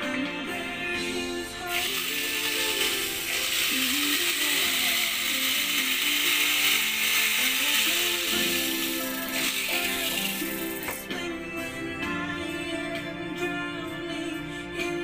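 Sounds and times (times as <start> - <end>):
background music: 0.0 - 15.0
die grinder grinding metal: 1.7 - 11.1.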